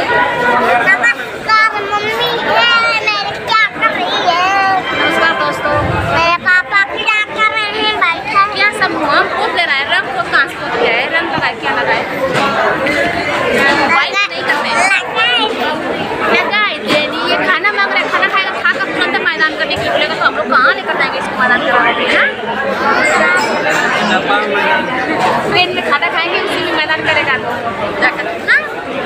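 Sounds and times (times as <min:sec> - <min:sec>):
child's voice: 0:00.9 - 0:04.8, 0:14.0 - 0:15.6.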